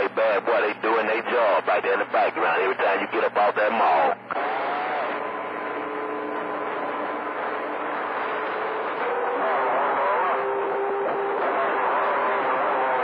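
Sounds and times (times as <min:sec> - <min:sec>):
radio static hiss: 0:00.0 - 0:13.0.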